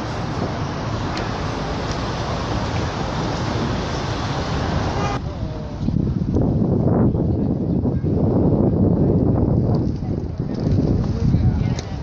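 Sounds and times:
outdoor background rush: 0.0s - 12.0s.

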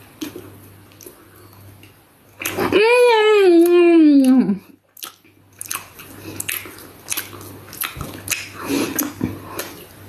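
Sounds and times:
person chewing crunchy food: 0.0s - 2.7s, 3.6s - 10.0s.

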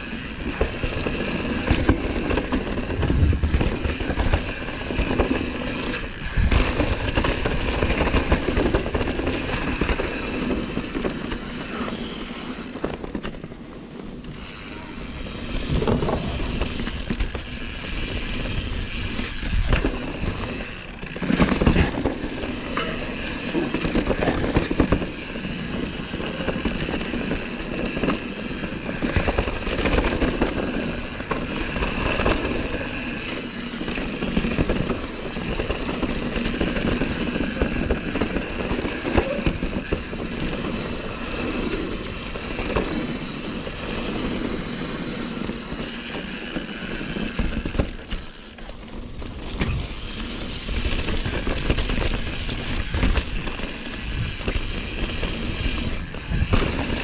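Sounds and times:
bike knocking and rattling: 0.0s - 57.0s
tire and wind noise: 0.0s - 57.0s.

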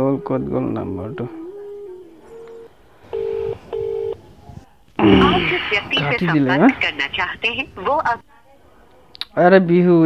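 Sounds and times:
telephone ringback tone: 1.3s - 4.2s.

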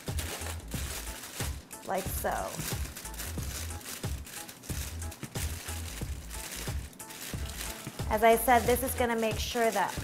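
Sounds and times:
aluminium foil crinkling: 0.0s - 10.0s
background music: 0.0s - 10.0s.

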